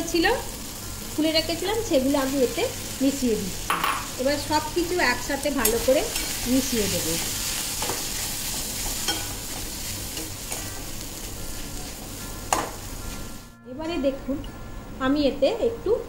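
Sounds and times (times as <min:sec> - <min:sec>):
frying sizzle: 0:00.0 - 0:13.5
spatula knocking pan: 0:12.2 - 0:12.8.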